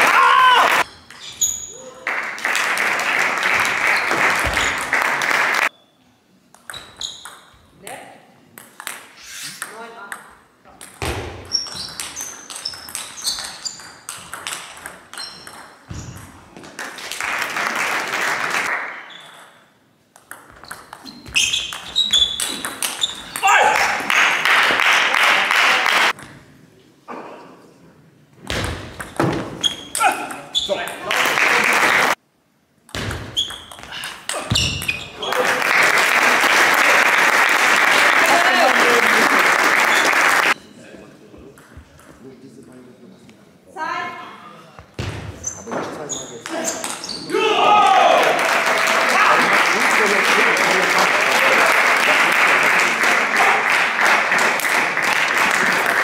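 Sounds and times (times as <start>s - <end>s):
audience applauding: 0.0s - 0.8s, 2.0s - 5.7s, 16.8s - 18.9s, 23.7s - 26.1s, 31.0s - 32.2s, 35.2s - 40.6s, 48.1s - 56.0s.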